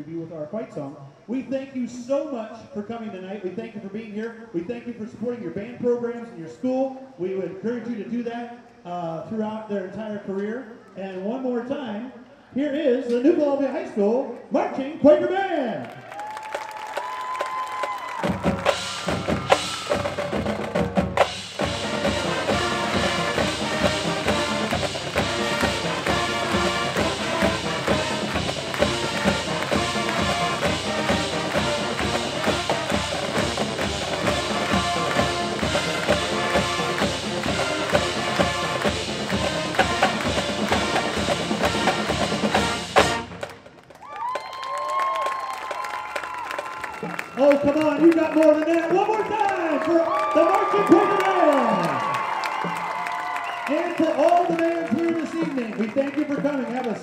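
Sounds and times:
drumline beat: 0:16.4 - 0:43.9, 0:50.4 - 0:56.7
marching band playing: 0:16.6 - 0:43.9, 0:46.6 - 0:56.9.

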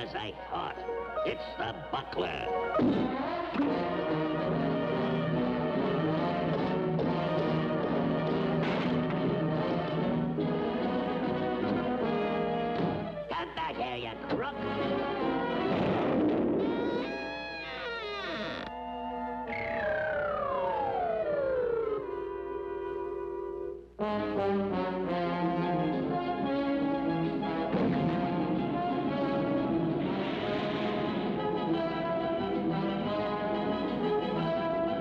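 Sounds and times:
brass and timpani chords: 0:00.0 - 0:17.4, 0:21.7 - 0:35.0
orchestral cartoon music: 0:00.0 - 0:17.8, 0:18.7 - 0:35.0.

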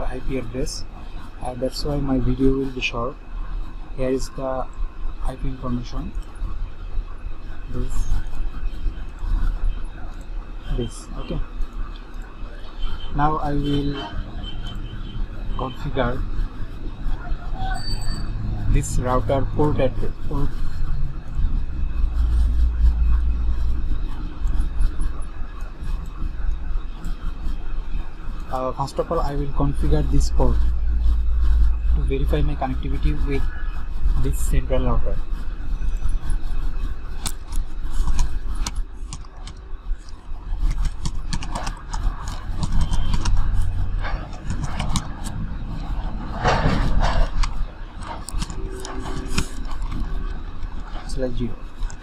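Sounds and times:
low background rumble: 0:00.0 - 0:52.0
computer keyboard typing: 0:35.8 - 0:52.0.

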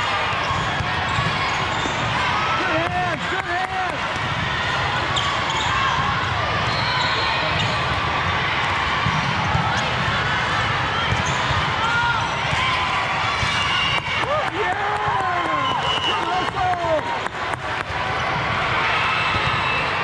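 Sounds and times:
volleyball being played: 0:00.0 - 0:20.0
shoes squeaking on a court: 0:00.4 - 0:02.2, 0:05.1 - 0:05.9, 0:11.1 - 0:11.6.

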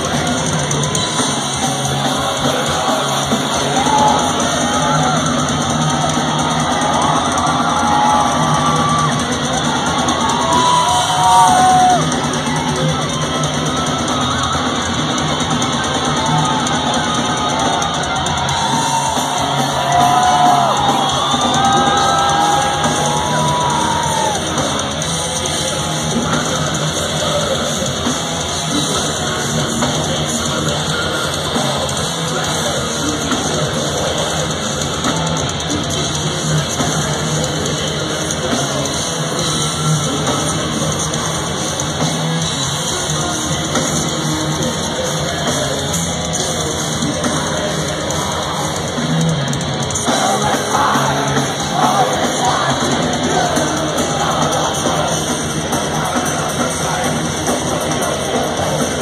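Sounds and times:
heavy metal band playing live: 0:00.0 - 0:59.0.

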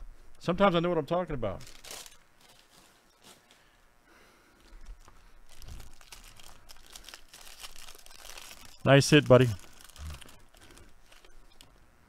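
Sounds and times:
foil wrapper crinkling: 0:01.6 - 0:03.8, 0:04.6 - 0:11.7.

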